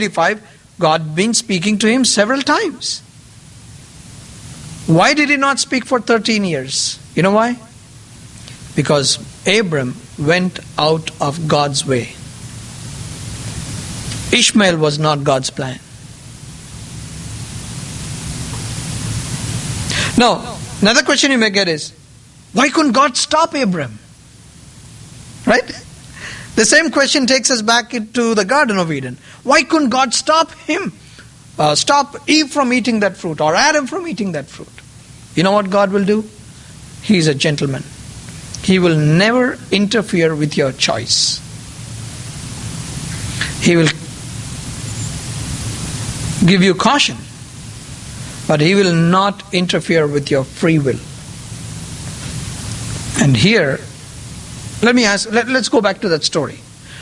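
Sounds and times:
low hum: 0.0s - 57.0s
steady hiss: 0.0s - 57.0s.

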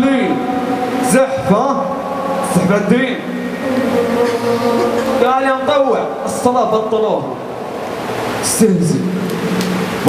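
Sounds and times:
man holding long vowel: 0.0s - 8.4s.

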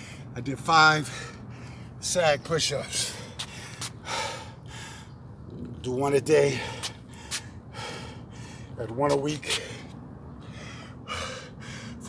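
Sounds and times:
man breathing hard: 0.0s - 0.4s, 1.0s - 2.0s, 2.9s - 5.2s, 6.5s - 8.8s, 9.5s - 12.0s.

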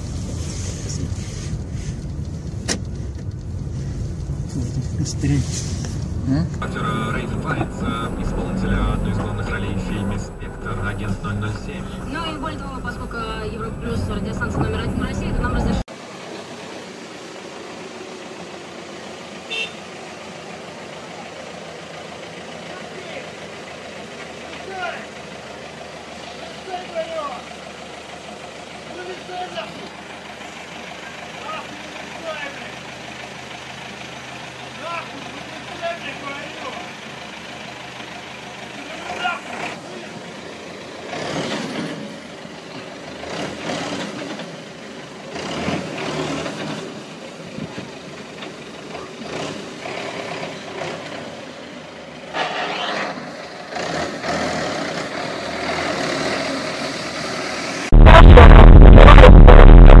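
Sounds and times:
person speaking: 4.5s - 15.9s.

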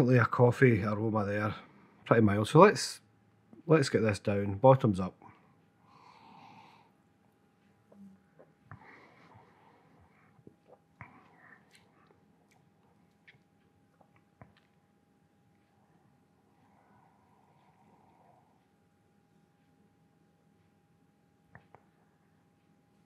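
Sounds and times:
breath out: 8.7s - 10.4s
mouth and swallowing clicks: 10.4s - 14.8s.

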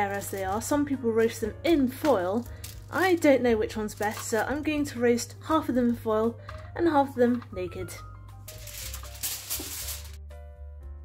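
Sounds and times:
aluminium foil crinkling: 0.0s - 0.7s, 2.0s - 4.7s, 8.4s - 10.2s
background music: 0.0s - 11.0s.

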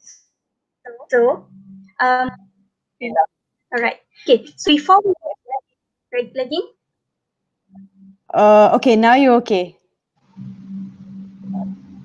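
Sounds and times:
steady low hum: 1.2s - 3.2s, 7.7s - 8.7s, 10.3s - 12.0s.

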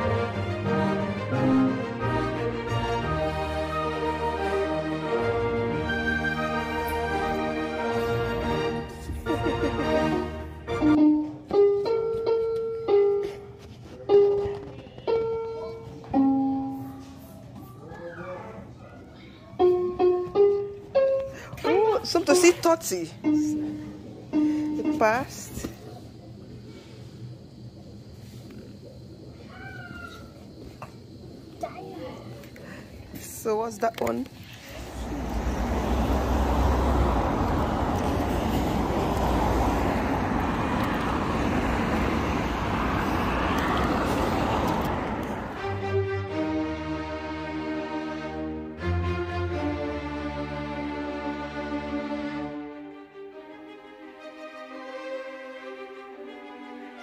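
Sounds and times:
slow string music: 0.0s - 12.4s, 44.5s - 57.0s
electronic floor piano notes: 0.0s - 17.6s, 19.5s - 25.9s
passing cars rushing: 34.6s - 52.8s.

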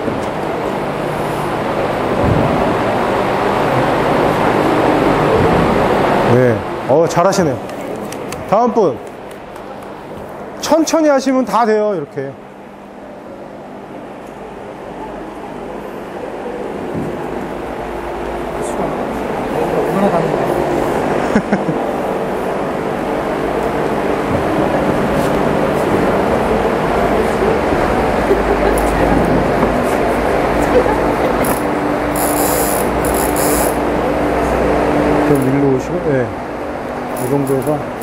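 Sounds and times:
electric fan blowing: 0.0s - 38.0s
indistinct voices: 22.9s - 36.4s.

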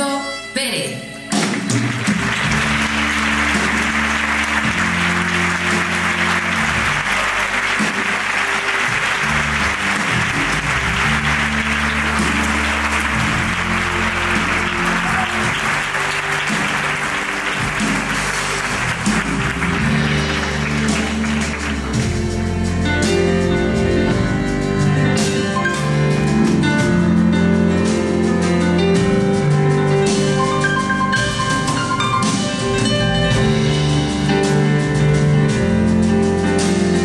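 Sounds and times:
audience applauding: 1.4s - 22.5s.

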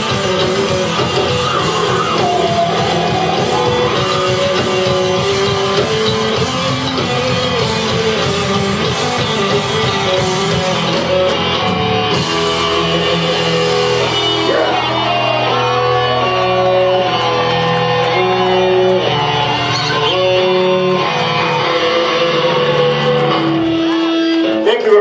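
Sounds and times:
bass guitar: 0.0s - 25.0s
electric guitars: 0.0s - 25.0s.

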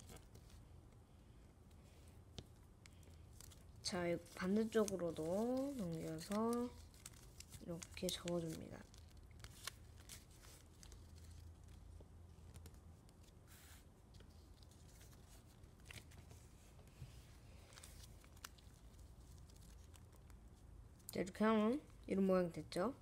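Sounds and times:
paper rustling and creasing: 0.0s - 0.7s, 1.6s - 20.6s
low room hum: 0.0s - 23.0s.

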